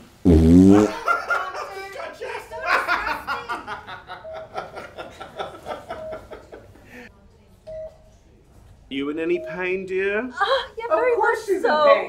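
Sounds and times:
people laughing: 0:00.7 - 0:07.0.

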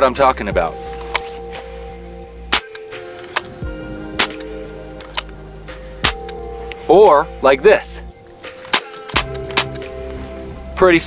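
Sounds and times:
background music: 0:00.0 - 0:11.0
rifle action clicks: 0:02.5 - 0:03.6, 0:04.2 - 0:05.4, 0:06.0 - 0:06.4, 0:08.4 - 0:10.2
air rifle shots: 0:02.5 - 0:05.3, 0:06.0 - 0:06.4, 0:08.4 - 0:10.0.

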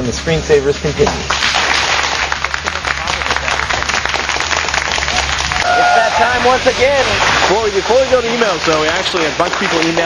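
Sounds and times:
studio audience applause: 0:01.2 - 0:10.0.

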